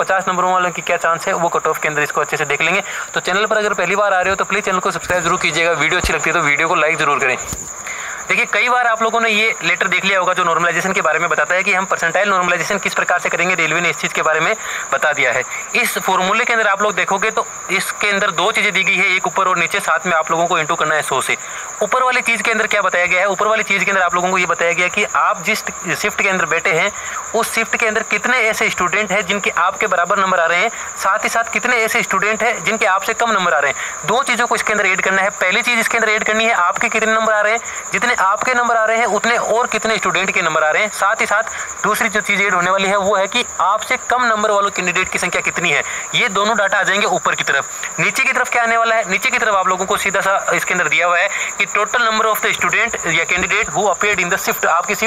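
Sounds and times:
faint high-pitched whine: 0.0 - 55.0
man speaking: 0.0 - 55.0
person talking: 0.0 - 55.0.

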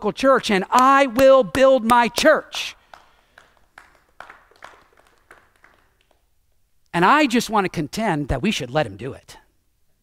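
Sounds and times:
hand claps: 0.3 - 6.3.

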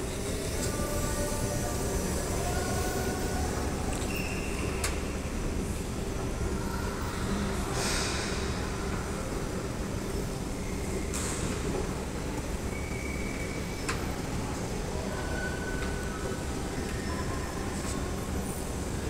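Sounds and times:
brief hisses: 7.7 - 8.6.

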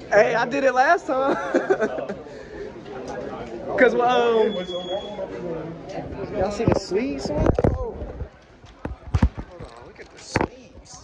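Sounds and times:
faint background noise: 0.0 - 11.0.

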